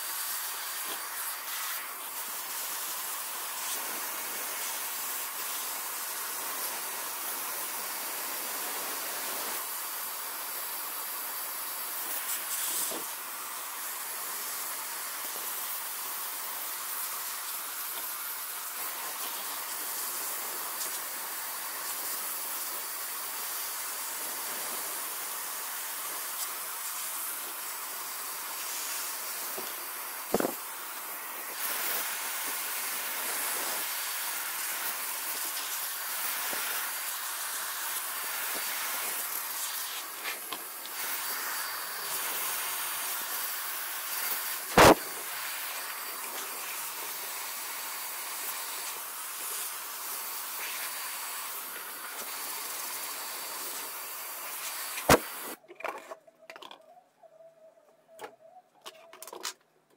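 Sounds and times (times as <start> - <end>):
steady hiss: 0.0 - 55.6.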